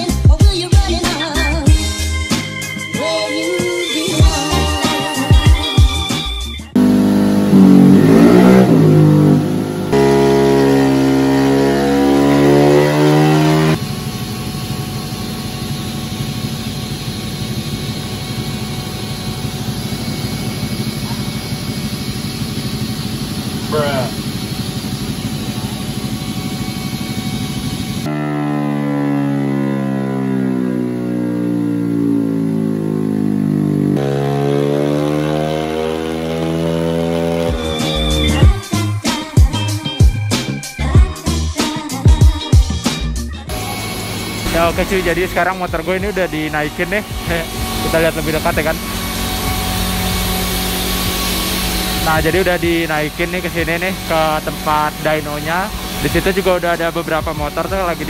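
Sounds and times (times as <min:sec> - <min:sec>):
scooter engine revving: 0:00.0 - 0:58.0.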